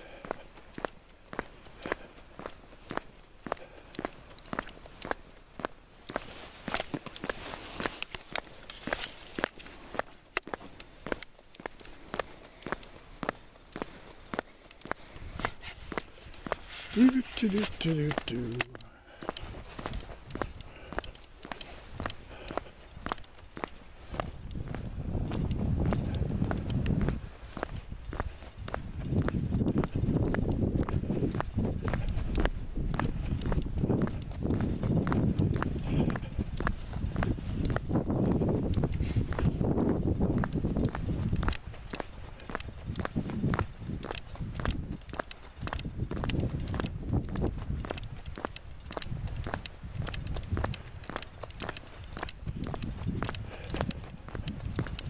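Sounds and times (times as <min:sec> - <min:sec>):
boot footsteps on asphalt: 0:00.0 - 0:55.0
low wind rumble: 0:18.2 - 0:55.0.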